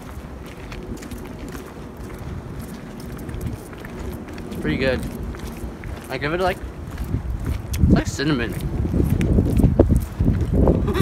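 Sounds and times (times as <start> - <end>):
footsteps on pavement: 0.0 - 11.0
wind rumble on microphone: 0.0 - 11.0
chewing: 0.1 - 7.9.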